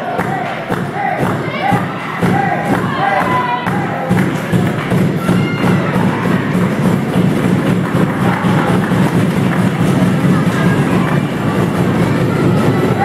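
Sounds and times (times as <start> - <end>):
crowd din in a hall: 0.0 - 13.0
music: 0.2 - 13.0.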